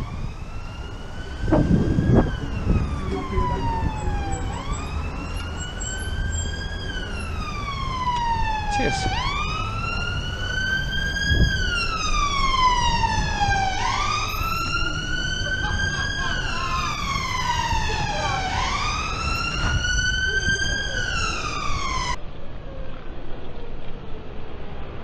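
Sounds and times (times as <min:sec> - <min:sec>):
emergency vehicle siren wailing: 0:00.0 - 0:22.2
road and wind rumble: 0:00.0 - 0:25.0.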